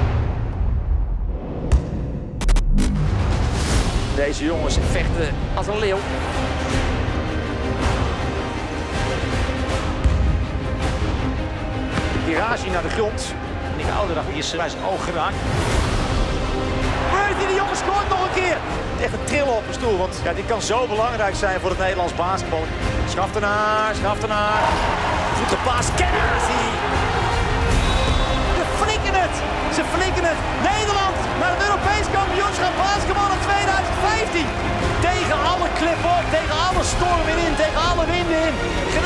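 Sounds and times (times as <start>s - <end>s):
background music: 0.0s - 39.0s.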